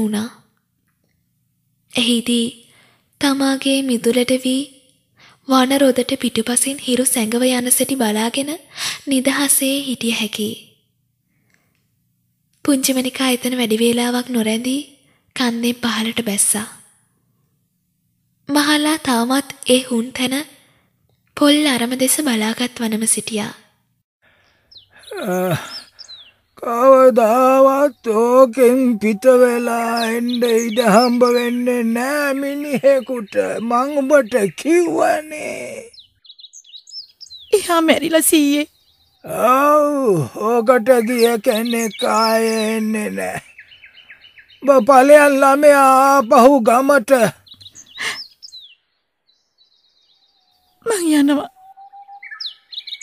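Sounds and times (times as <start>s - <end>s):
high bird chirps: 24.4s - 39.5s, 40.2s - 46.5s, 47.4s - 53.0s
drawn-out falling cry: 24.9s - 36.0s.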